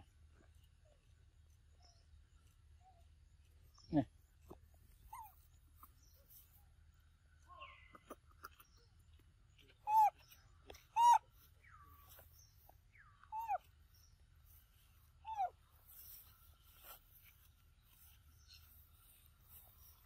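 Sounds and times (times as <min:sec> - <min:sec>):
baby monkey high-pitched cries: 0:05.0 - 0:05.5, 0:09.8 - 0:11.5, 0:13.3 - 0:13.7, 0:15.2 - 0:15.6.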